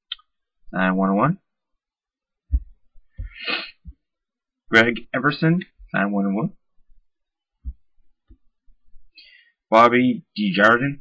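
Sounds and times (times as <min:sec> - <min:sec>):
breath through the nose: 0:03.2 - 0:03.9.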